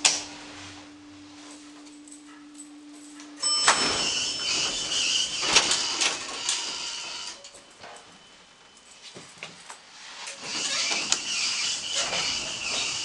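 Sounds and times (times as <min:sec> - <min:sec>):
elevator hum: 0:00.0 - 0:09.0, 0:10.4 - 0:13.0
elevator doors sliding open: 0:03.4 - 0:08.0, 0:10.4 - 0:13.0.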